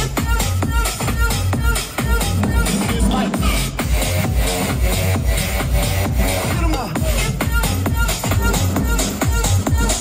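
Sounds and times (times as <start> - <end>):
driving kick drum: 0.0 - 10.0
electronic dance music: 0.0 - 10.0.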